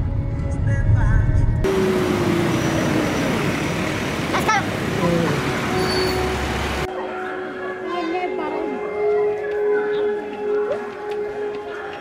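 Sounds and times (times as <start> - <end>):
road traffic rushing: 1.6 - 6.9.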